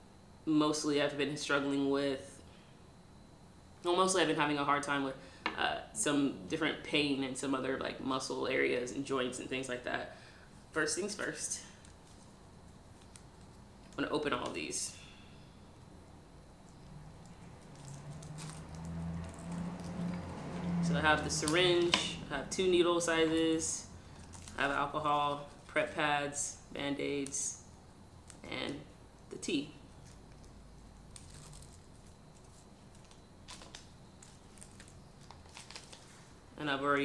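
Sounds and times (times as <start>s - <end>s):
low steady hum: 0.0s - 37.0s
medical packaging crinkling: 11.8s - 14.0s, 16.7s - 20.6s, 23.5s - 25.7s, 30.0s - 36.3s.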